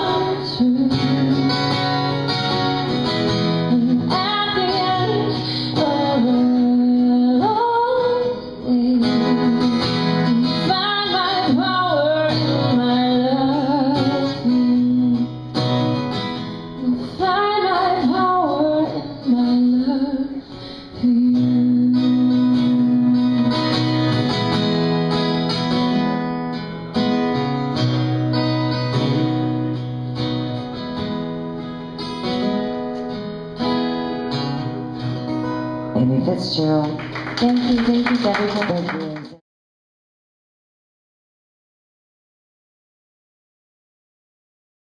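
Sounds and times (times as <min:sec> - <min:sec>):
woman singing: 0:00.0 - 0:02.2, 0:03.4 - 0:15.5, 0:16.7 - 0:24.0
acoustic guitar strumming: 0:00.0 - 0:19.8, 0:20.5 - 0:38.2.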